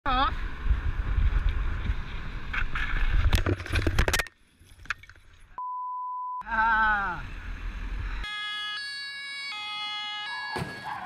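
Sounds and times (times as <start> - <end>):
road rumble: 0.0 - 5.6, 6.4 - 11.0
wind rushing over microphone: 0.2 - 3.4
censor bleep: 5.6 - 6.5
bicycle crashing to ground: 10.5 - 11.0.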